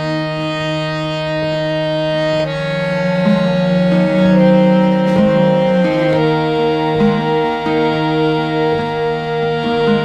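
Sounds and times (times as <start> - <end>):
free-reed instrument chord: 0.0 - 10.0
low drone: 0.0 - 10.0.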